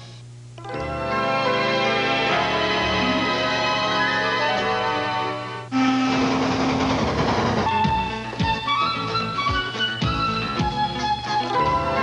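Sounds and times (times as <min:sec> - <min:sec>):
music: 0:00.0 - 0:12.0
low steam whistle: 0:05.7 - 0:06.4.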